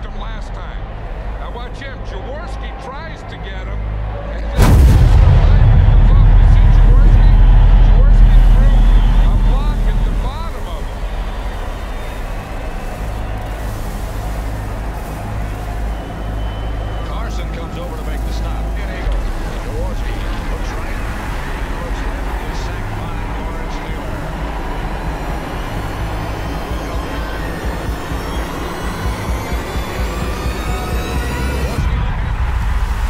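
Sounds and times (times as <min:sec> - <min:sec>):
deep boom impact: 0:04.6 - 0:12.8.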